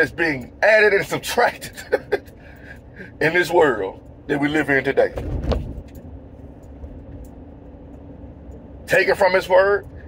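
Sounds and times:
car cabin road and engine hum: 0.0 - 10.0.

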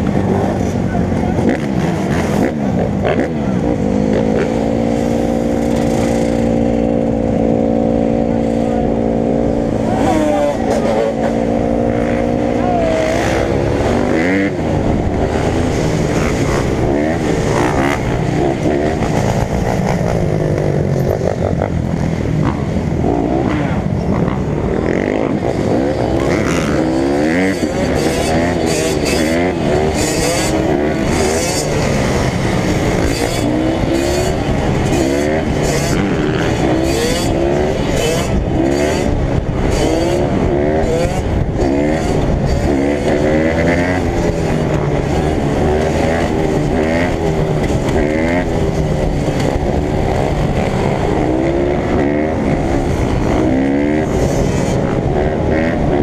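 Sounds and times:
dirt bike engine revving: 0.0 - 56.0
other dirt bikes and atvs running: 0.0 - 56.0.

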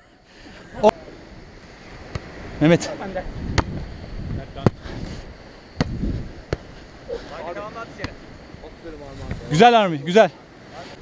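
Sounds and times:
volleyball smacks: 3.5 - 3.8.

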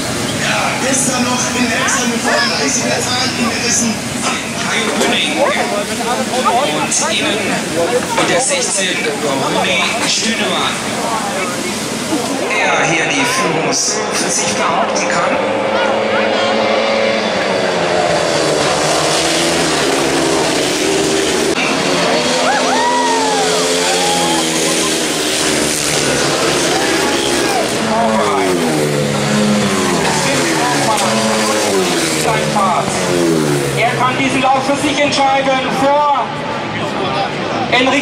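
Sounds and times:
racing motorcycle engines revving: 0.0 - 38.0.

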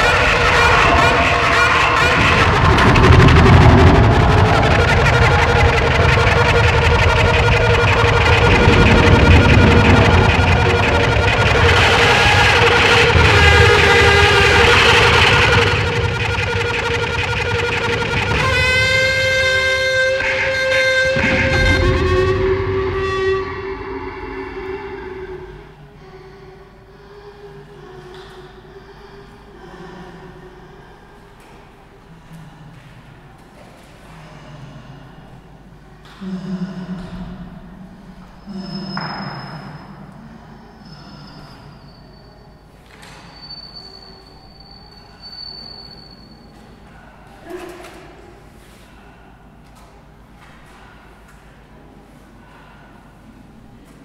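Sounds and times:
bowed daxophone: 0.0 - 26.0.

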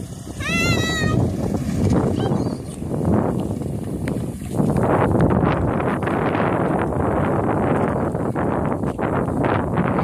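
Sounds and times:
light aircraft engine: 0.0 - 4.6
wind buffeting microphone: 0.0 - 10.0.

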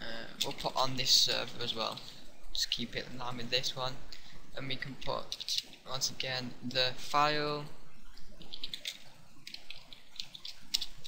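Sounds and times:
keyboard typing: 8.0 - 11.0.

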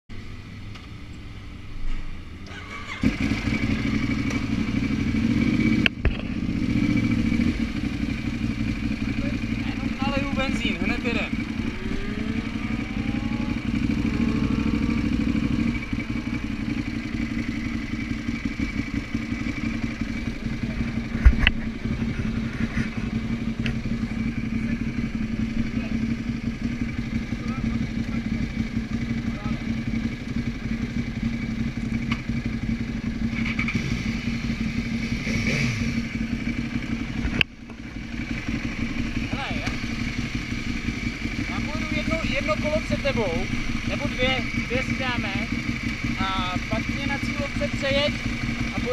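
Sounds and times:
motorcycle engine idling: 0.6 - 48.9.

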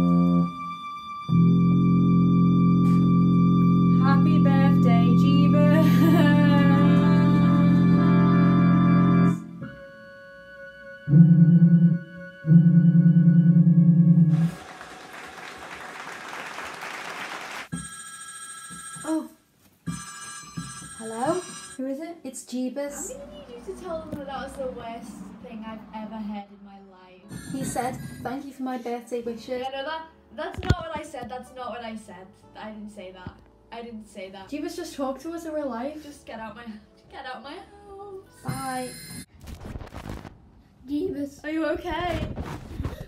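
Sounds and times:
organ keyboard chords: 0.0 - 0.7, 1.3 - 9.9, 11.1 - 14.6.

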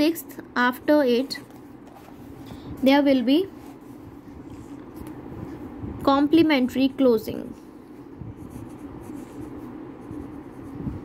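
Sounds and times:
steady low hum: 0.0 - 11.0
pen scratching on paper: 8.4 - 11.0.

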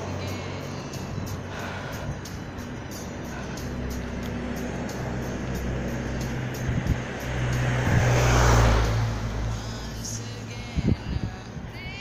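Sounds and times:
car passing close by: 0.0 - 10.9
street traffic hum: 0.0 - 12.0.

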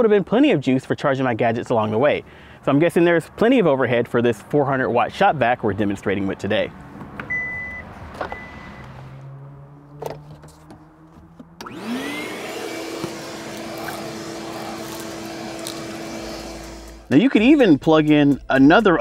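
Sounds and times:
shop vac motor running: 11.2 - 17.1.

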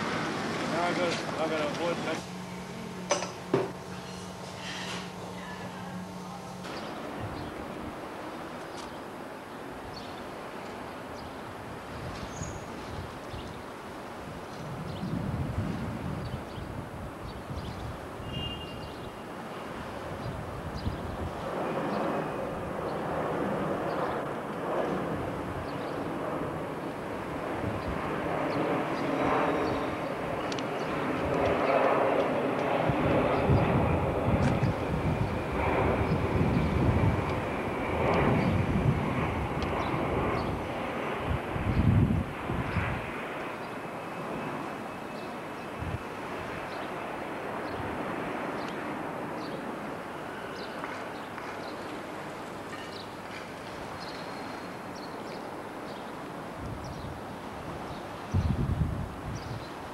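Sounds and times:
rumble of traffic and machinery: 0.0 - 59.9.

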